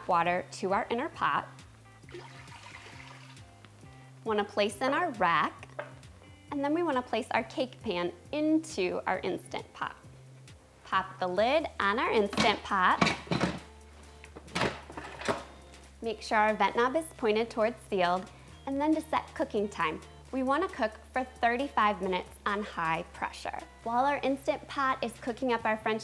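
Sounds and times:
soft background music: 0.0 - 26.0
water trickling into pot: 2.0 - 3.5.

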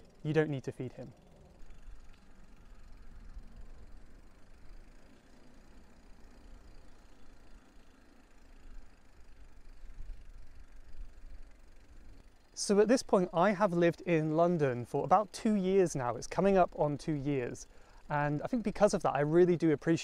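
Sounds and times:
bicycle tyre noise: 0.0 - 20.0.

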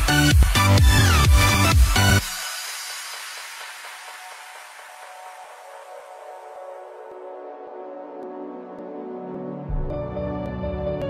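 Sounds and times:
quiet ambient music: 3.6 - 11.0.

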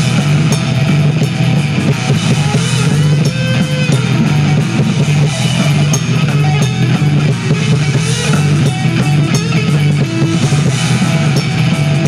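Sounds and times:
bass guitar: 0.0 - 12.0
drum kit: 0.0 - 12.0
electric guitars: 0.0 - 12.0.

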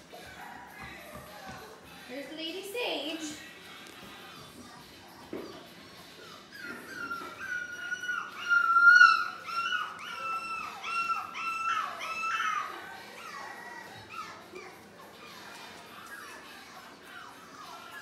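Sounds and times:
puppies whining: 0.0 - 18.0.

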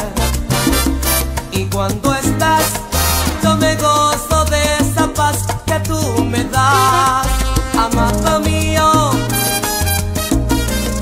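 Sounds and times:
instrumental salsa music: 0.0 - 11.0.

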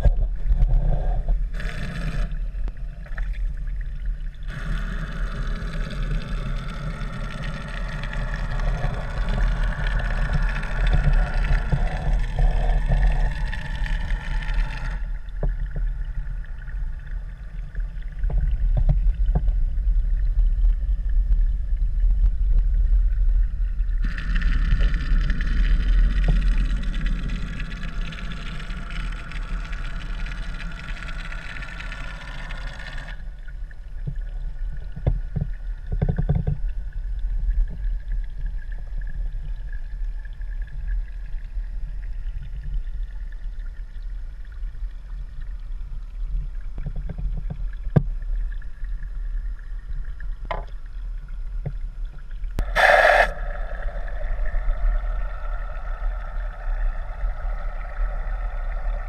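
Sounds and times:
underwater rumble of moving water: 0.0 - 59.0
high hiss: 52.6 - 56.1.

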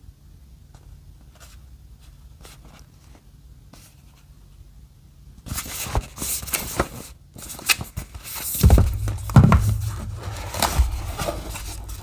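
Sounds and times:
low steady hum: 8.6 - 12.0.

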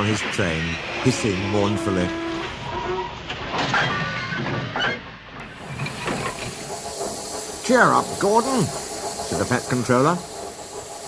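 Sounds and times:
steam locomotive hissing: 5.4 - 11.0.

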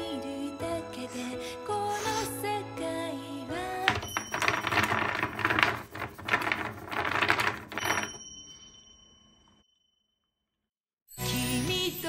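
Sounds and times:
rapid clatter of clinks: 3.9 - 8.6.

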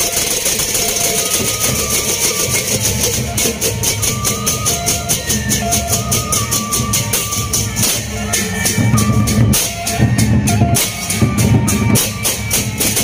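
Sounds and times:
barrel drums beating: 0.0 - 13.0
hand cymbals clashing: 0.0 - 13.0
ringing metal tones: 0.0 - 13.0.

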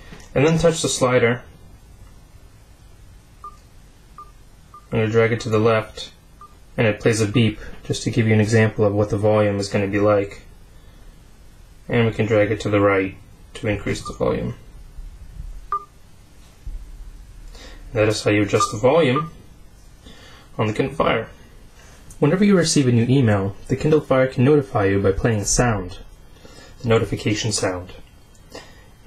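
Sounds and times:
tablet volume beep: 3.4 - 3.6, 4.2 - 4.9, 14.0 - 14.2, 15.7 - 15.9, 18.6 - 19.4.

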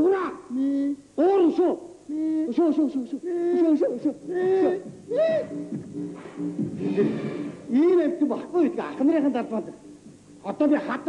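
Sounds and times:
man hooting through cupped hands: 3.2 - 8.0.

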